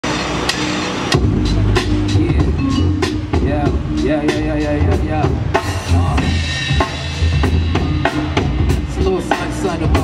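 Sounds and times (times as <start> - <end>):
deep bass line: 0.0 - 10.0
drum-kit hits: 0.0 - 10.0
live hip-hop band music: 0.0 - 10.0.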